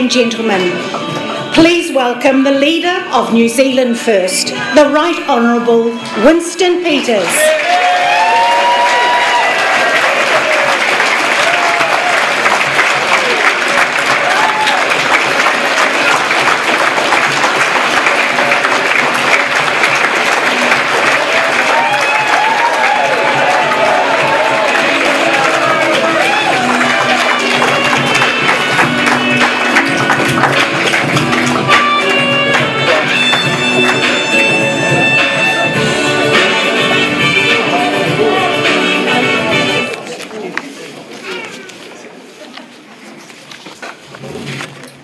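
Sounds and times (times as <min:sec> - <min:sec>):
loud entrance music: 0:00.0 - 0:40.2
crowd whooping: 0:07.4 - 0:15.9, 0:21.0 - 0:28.4
audience applauding: 0:07.4 - 0:39.2.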